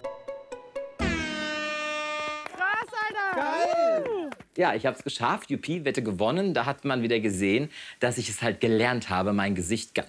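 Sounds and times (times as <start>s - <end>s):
air horn blast: 1.0s - 2.7s
people cheering: 2.4s - 4.4s.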